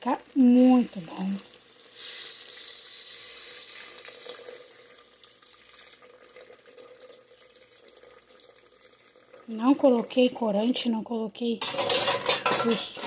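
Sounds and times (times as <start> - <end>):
water pouring and splashing: 0.4 - 10.8.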